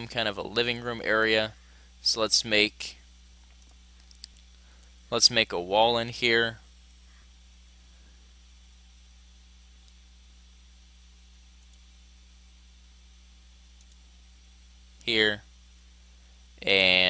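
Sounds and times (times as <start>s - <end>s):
electrical hum: 0.0s - 17.0s
mouse clicks: 11.6s - 11.8s, 13.8s - 14.0s.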